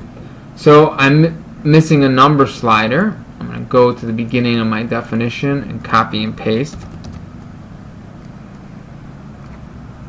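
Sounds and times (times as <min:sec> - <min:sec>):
low hum with faint hiss: 0:00.0 - 0:10.0.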